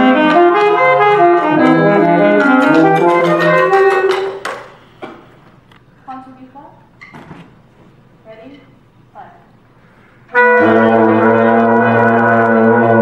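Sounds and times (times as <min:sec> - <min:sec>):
wind ensemble playing chords: 0:00.0 - 0:04.4, 0:10.3 - 0:13.0.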